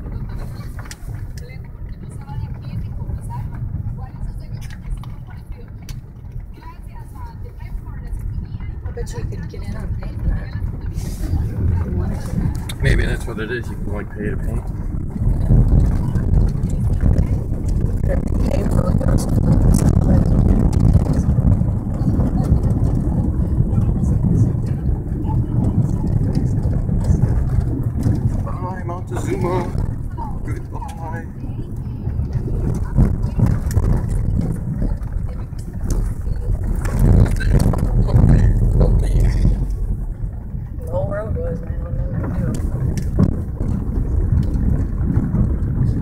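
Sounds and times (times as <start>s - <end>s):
car driving on dirt road: 0.0s - 46.0s.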